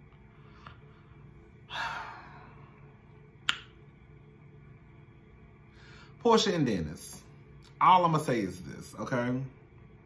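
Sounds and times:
man exhaling: 0:01.7 - 0:02.7.

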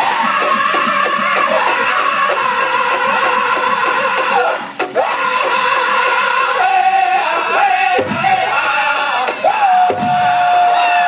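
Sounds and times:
big drum steady beat: 0:00.0 - 0:11.0
men singing in unison: 0:00.0 - 0:11.0.

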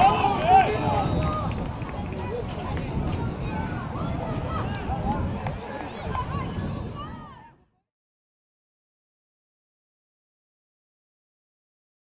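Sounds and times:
players and spectators shouting: 0:00.0 - 0:01.6, 0:02.2 - 0:07.5.

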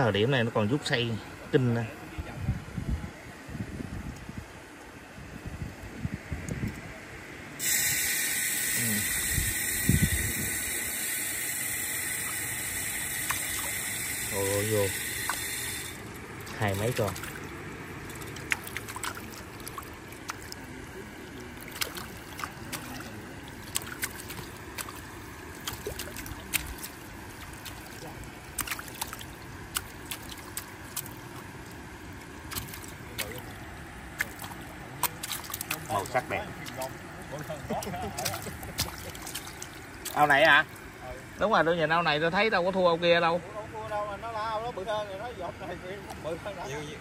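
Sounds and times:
water trickling and dripping: 0:07.6 - 0:41.7
shrimp clicking and splashing: 0:10.6 - 0:40.9.

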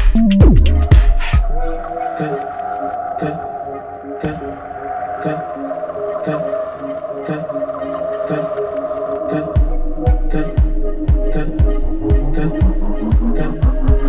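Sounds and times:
deep kick drum: 0:00.0 - 0:01.6, 0:09.6 - 0:14.0
electronic music synth chords: 0:00.0 - 0:14.0.

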